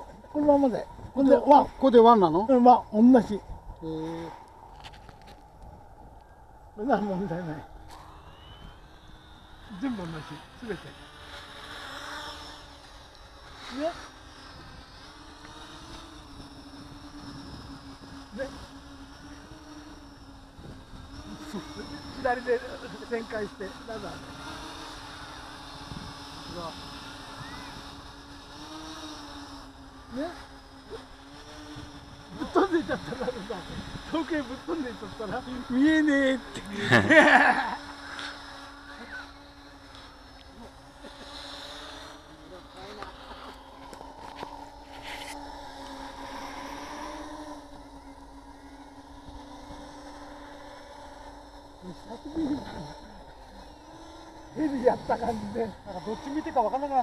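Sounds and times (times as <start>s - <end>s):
quadcopter propellers humming: 0.0s - 57.0s.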